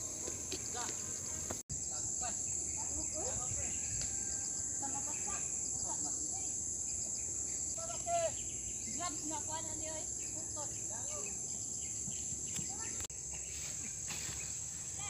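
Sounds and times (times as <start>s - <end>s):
high-pitched insect chorus: 0.0s - 15.0s.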